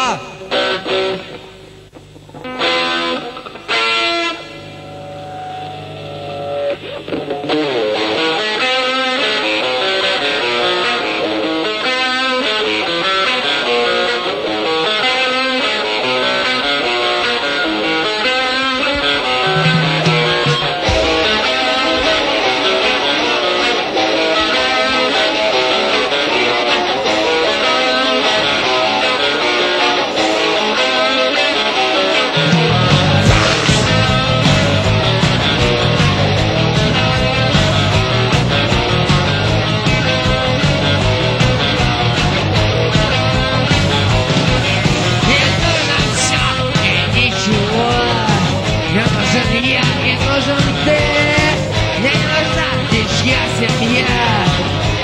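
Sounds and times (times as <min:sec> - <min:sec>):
electric guitar chord stabs: 0:00.0 - 0:55.0
punk rock band playing live: 0:02.2 - 0:55.0.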